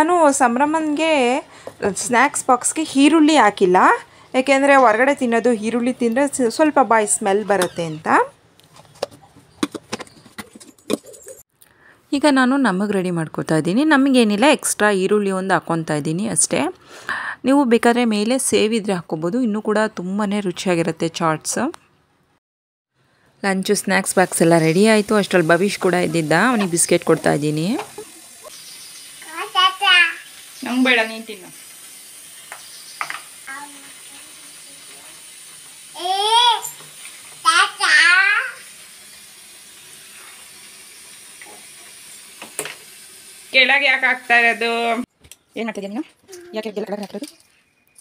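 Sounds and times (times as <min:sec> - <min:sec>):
toddler vocalizing: 0:36.0 - 0:36.8.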